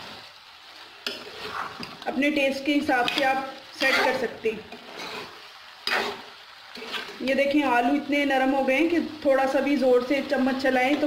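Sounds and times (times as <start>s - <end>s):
curry sizzling: 0.0s - 11.0s
spoon scraping a pan: 1.0s - 2.1s, 2.9s - 7.2s.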